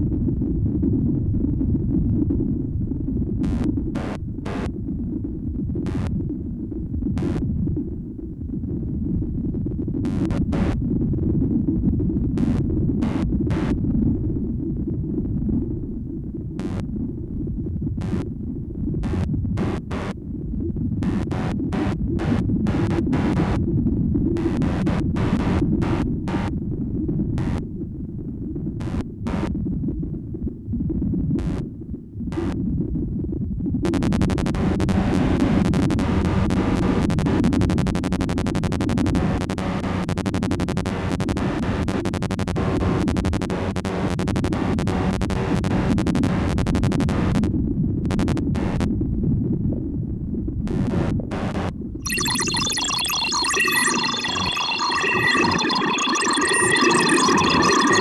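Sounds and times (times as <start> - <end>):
stuttering clicks and glitches: 21.0 - 23.6, 33.9 - 47.5, 48.1 - 48.9, 50.7 - 58.0
bright pitched tones: 52.1 - 58.0
low synthesizer drone: 52.1 - 58.0.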